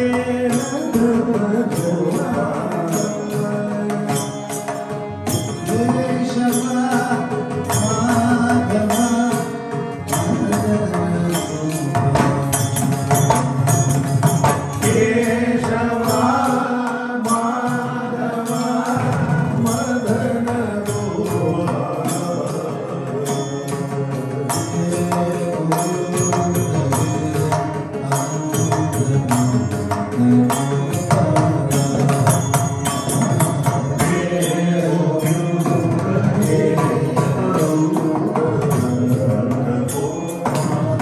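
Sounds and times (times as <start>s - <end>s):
devotional singing: 0.0s - 12.5s, 14.8s - 32.3s, 33.1s - 41.0s
jingling percussion: 0.0s - 41.0s
mridangam strokes: 0.0s - 41.0s.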